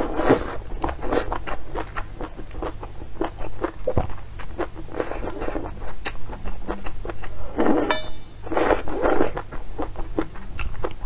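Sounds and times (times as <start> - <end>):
wet chewing clicks: 0.0 - 7.4, 8.8 - 11.0.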